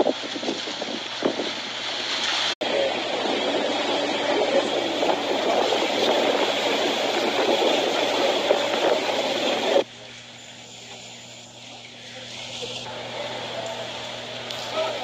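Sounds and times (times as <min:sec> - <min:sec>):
choppy water: 0:00.0 - 0:15.0
motorboats under way: 0:00.0 - 0:15.0
wind rushing: 0:02.6 - 0:09.8.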